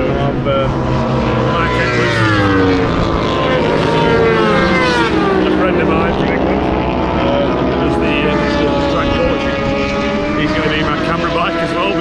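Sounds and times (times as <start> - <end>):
race car engine passing: 0.0 - 12.0.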